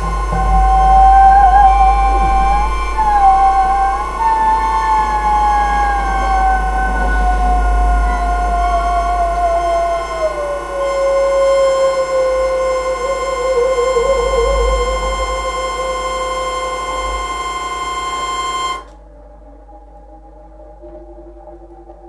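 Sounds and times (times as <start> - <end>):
faint high tones: 0.0 - 18.9
held synthesized tones: 0.0 - 18.9
steady higher tone: 0.0 - 18.9
tone sliding down in pitch: 0.0 - 18.9.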